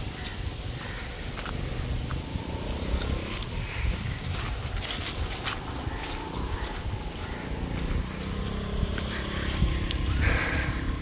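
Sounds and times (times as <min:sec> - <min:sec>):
footsteps on grass: 0:00.0 - 0:11.0
wind buffeting microphone: 0:00.0 - 0:11.0.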